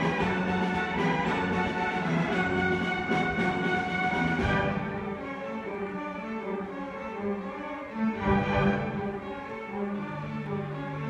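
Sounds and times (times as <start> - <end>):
string orchestra sustained notes: 0.0 - 11.0.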